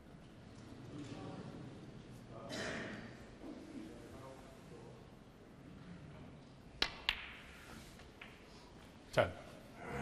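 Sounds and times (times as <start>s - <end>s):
ball clicking against ball: 6.8s - 7.4s.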